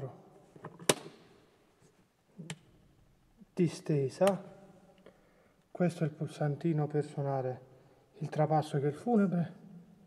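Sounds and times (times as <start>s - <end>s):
switch clicks: 4.2s - 4.5s.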